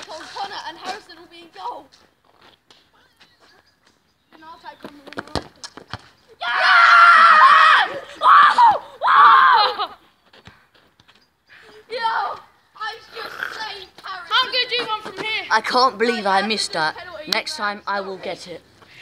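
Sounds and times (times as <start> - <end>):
boy yelling: 6.4 - 10.0, 11.8 - 18.4.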